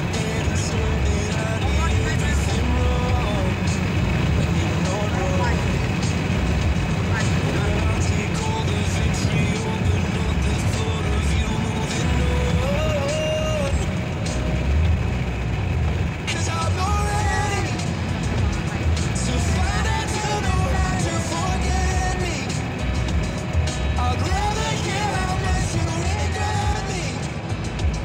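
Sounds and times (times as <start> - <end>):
music with singing voice: 0.0 - 28.0
road and engine rumble in car: 0.0 - 28.0.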